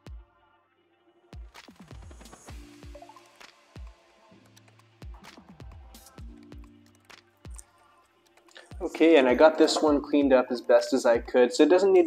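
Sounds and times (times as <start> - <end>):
electronic music with steady beat: 1.4 - 11.4.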